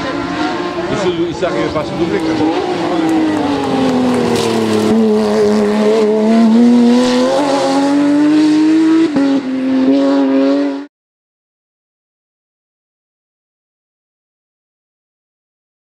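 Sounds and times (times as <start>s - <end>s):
rally car engine passing: 0.0s - 10.9s.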